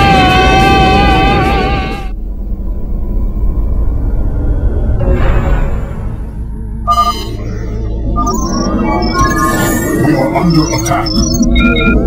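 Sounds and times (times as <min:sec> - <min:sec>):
short electronic beep: 0:06.9 - 0:12.0.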